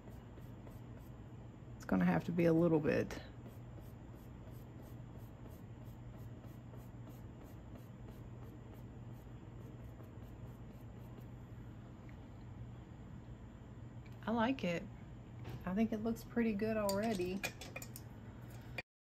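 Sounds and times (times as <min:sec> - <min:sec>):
paintbrush strokes on canvas: 0:00.0 - 0:01.2, 0:03.4 - 0:11.4
steady low hum: 0:00.0 - 0:18.8.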